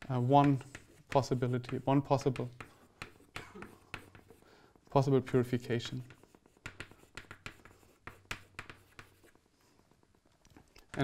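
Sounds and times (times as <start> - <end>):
chalk scratching on blackboard: 0.0 - 4.5, 5.2 - 10.0.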